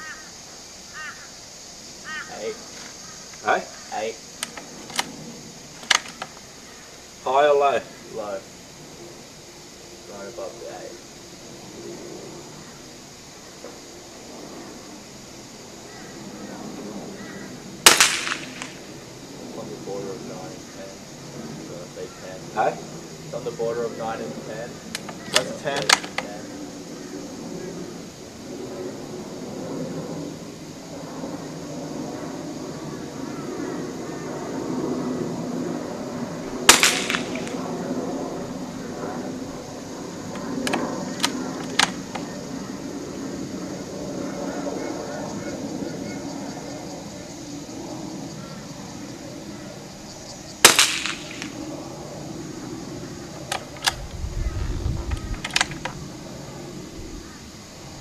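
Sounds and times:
rifle shots: 17.8 - 18.9, 36.6 - 37.6, 50.6 - 51.6.

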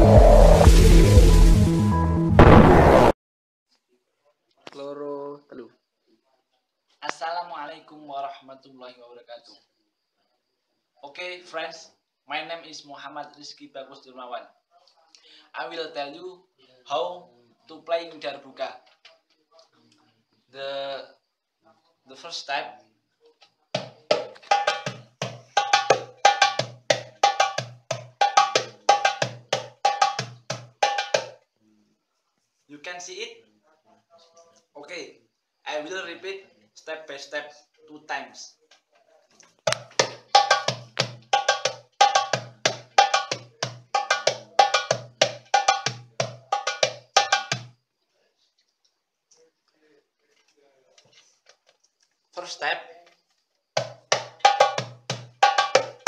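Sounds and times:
goblet drum played by hand: 0.0 - 1.0, 23.8 - 31.4, 39.7 - 47.7, 53.8 - 56.0.

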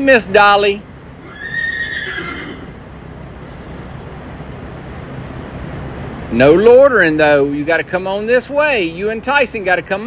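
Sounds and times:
horse whinnying: 1.2 - 2.8.

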